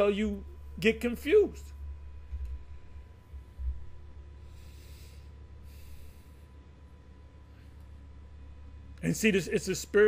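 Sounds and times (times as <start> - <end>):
low electrical hum: 0.0 - 10.0
man breathing heavily through nose: 4.4 - 6.8.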